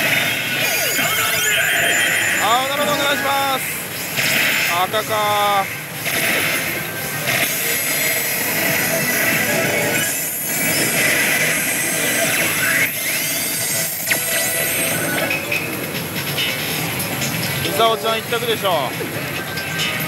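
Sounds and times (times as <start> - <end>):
din of busy gaming hall: 0.0 - 20.0
slot machine music and effects: 0.0 - 20.0.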